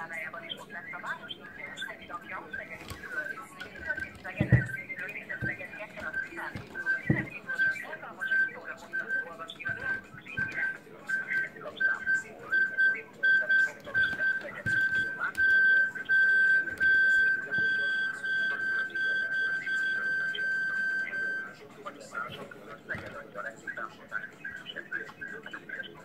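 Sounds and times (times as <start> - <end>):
faint voices: 0.0 - 26.0.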